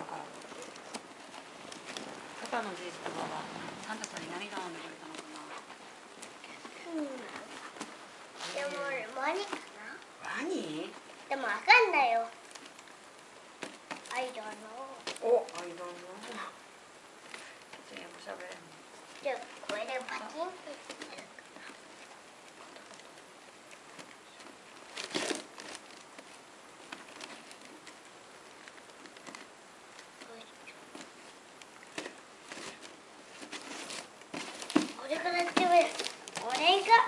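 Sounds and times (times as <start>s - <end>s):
people talking: 0.0s - 1.0s, 2.4s - 5.6s, 8.4s - 12.3s, 14.1s - 16.6s, 17.9s - 21.3s, 35.0s - 37.0s
wrapping paper rustling: 0.0s - 37.0s.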